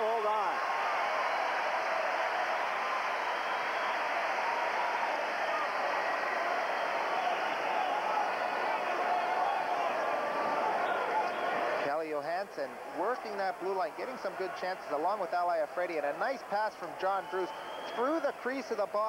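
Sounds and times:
crowd din of many voices: 0.0 - 19.0.

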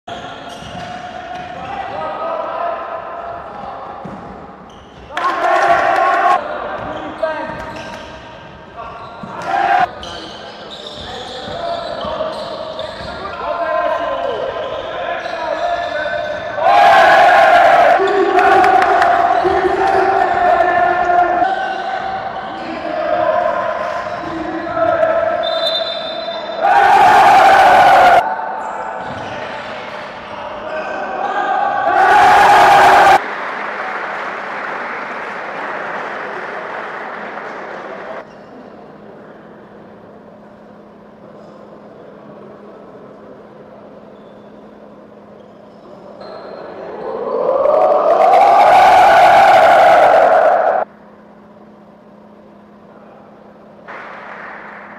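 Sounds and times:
players' voices: 0.1 - 33.2.

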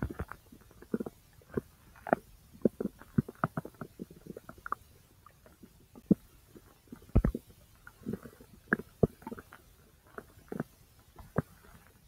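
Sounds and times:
bowel gurgles and pops: 0.0 - 12.0.

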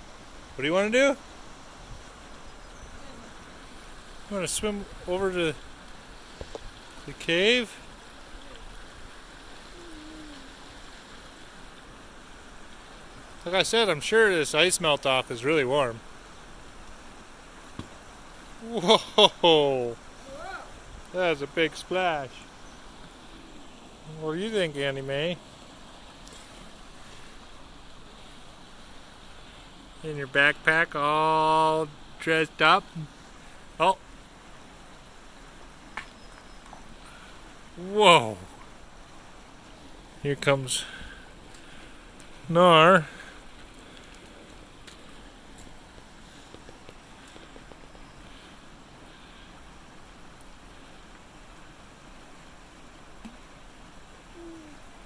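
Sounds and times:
creek water flowing: 0.0 - 55.0.

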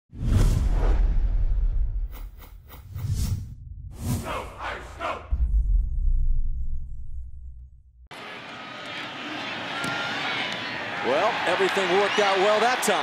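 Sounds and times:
whooshes: 0.1 - 7.8
low bass boom: 5.2 - 8.1
deep bass hits: 5.3 - 8.0.

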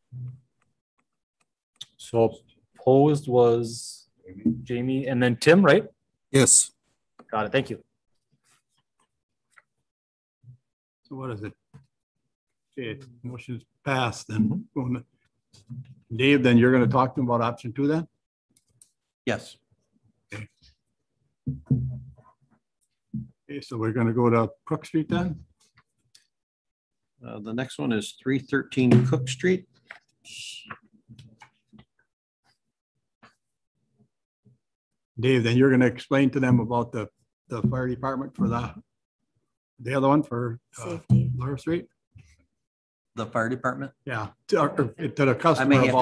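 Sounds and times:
person saying okay: 45.6 - 46.0.

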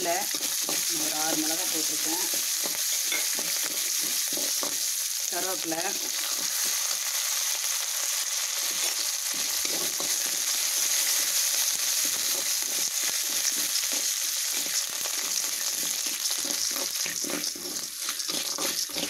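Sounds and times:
metal spoon scraping a pan: 0.0 - 5.0, 5.8 - 7.0, 8.6 - 19.0
food sizzling in hot oil: 0.0 - 19.0.

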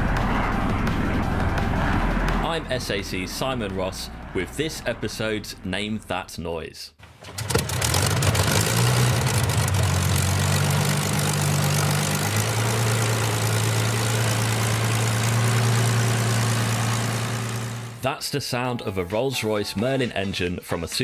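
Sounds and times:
aircraft piston engine running: 0.0 - 4.8, 7.3 - 18.0.

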